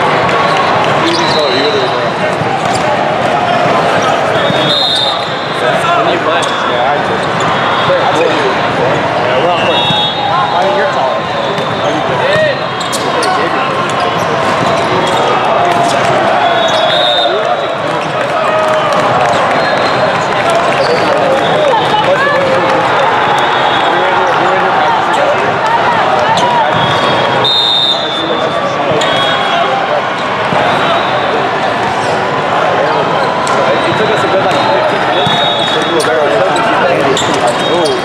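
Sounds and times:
many overlapping voices: 0.0s - 38.0s
volleyballs bouncing and hit: 2.1s - 4.7s, 11.5s - 16.2s
sneakers squeaking on court: 2.3s - 5.4s, 10.8s - 16.9s, 33.2s - 38.0s.

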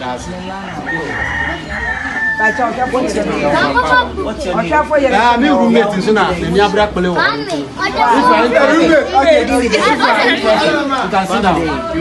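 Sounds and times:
people talking: 0.0s - 12.0s
rooster crowing: 0.5s - 3.6s.

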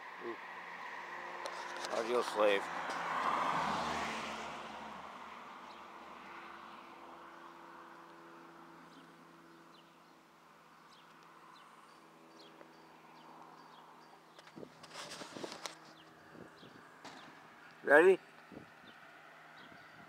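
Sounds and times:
bird chirps: 10.8s - 14.6s
camera handling rustles and knocks: 14.4s - 16.1s.

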